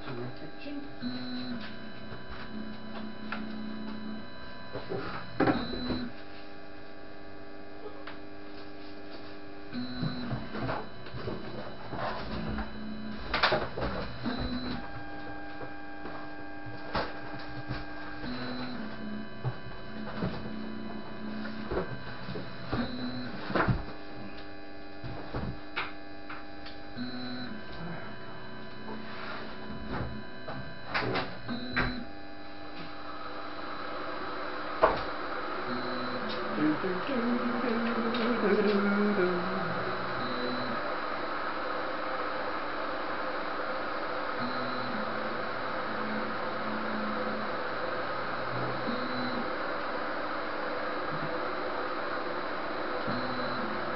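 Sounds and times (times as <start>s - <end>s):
steady hum: 0.0s - 53.9s.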